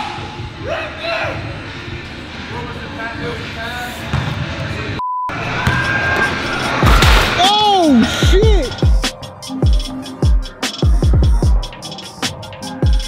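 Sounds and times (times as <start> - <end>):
music: 0.0 - 13.0
censor bleep: 5.0 - 5.3.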